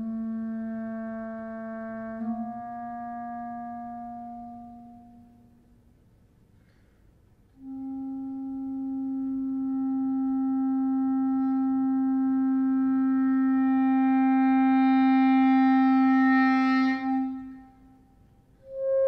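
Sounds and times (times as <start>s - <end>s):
clarinet long low note: 0.0s - 5.7s, 7.6s - 19.0s.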